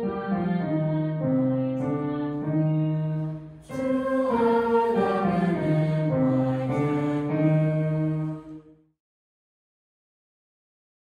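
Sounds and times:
choir singing: 0.0 - 8.8.

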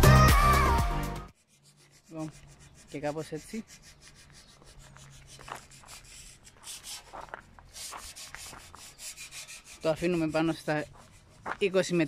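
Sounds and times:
background music: 0.0 - 1.3
paintbrush strokes on metal: 1.3 - 12.0.

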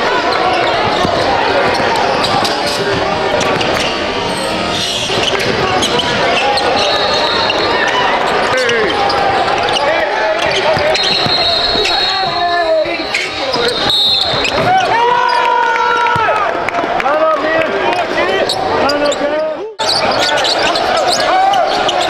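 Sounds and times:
sneakers squeaking: 0.0 - 15.5, 18.3 - 22.0
voices of players and spectators: 0.0 - 22.0.

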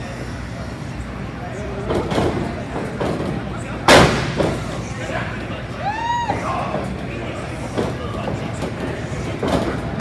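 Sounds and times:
crowd noise in echoing hall: 0.0 - 10.0.

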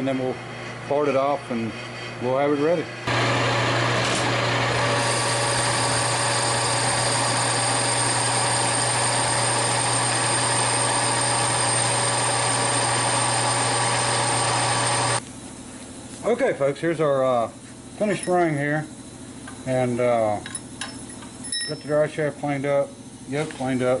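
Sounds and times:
metal lathe running: 3.1 - 15.2
thin high whine: 4.1 - 24.0.

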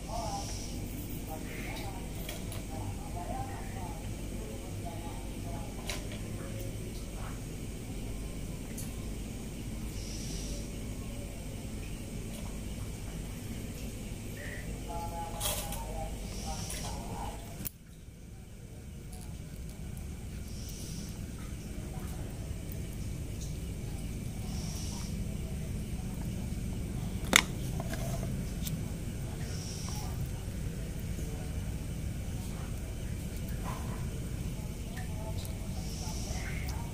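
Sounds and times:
low background hum: 0.0 - 36.9.

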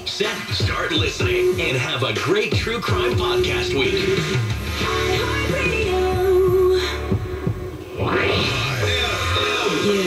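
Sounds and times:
radio jingle: 0.0 - 6.3, 7.5 - 10.0.

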